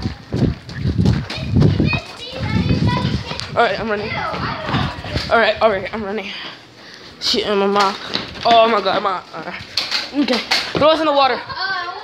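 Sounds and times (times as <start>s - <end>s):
children laughing: 1.4s - 5.3s, 10.0s - 12.0s.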